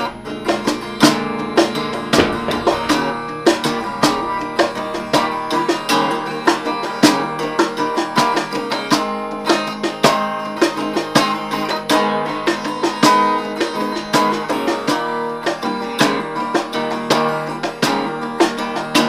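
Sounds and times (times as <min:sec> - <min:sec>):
acoustic guitar playing: 0:00.0 - 0:19.0
cajon beating: 0:00.0 - 0:19.0.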